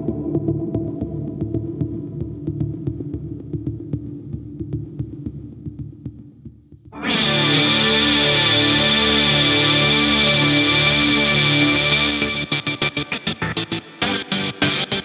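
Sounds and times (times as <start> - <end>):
sliced electric guitar: 7.0 - 15.0.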